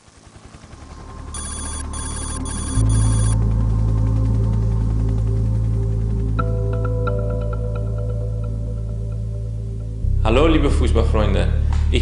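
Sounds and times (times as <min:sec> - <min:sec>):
electronic telephone ringing: 0:01.3 - 0:03.4.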